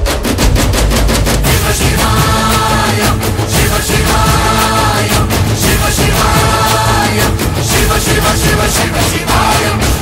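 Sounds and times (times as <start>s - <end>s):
rapid even drumming: 0.0s - 10.0s.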